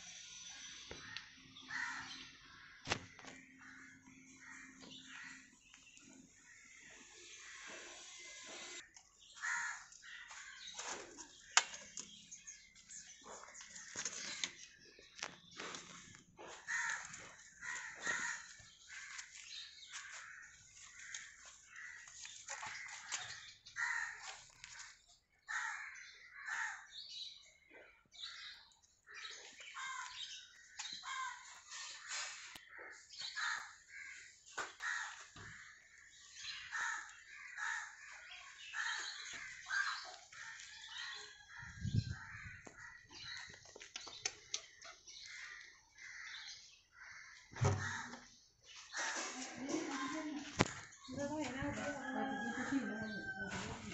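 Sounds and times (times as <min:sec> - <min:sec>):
birds calling: 0:00.1 - 0:53.9.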